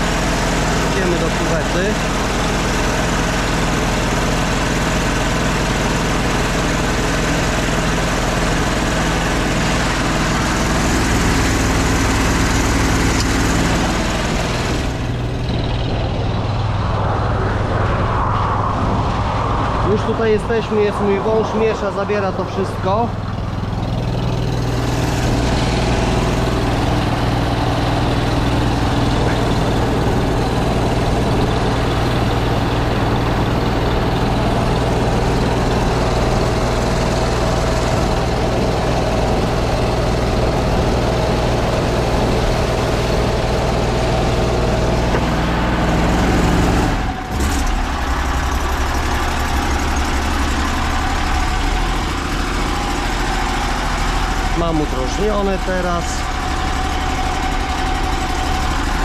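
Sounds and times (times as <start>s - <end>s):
sewer jetter pump running: 0.0s - 59.0s.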